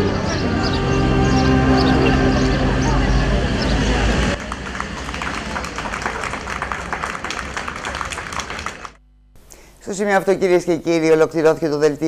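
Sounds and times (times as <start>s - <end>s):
string ensemble music: 0.0s - 5.6s
crowd clapping: 4.4s - 9.0s.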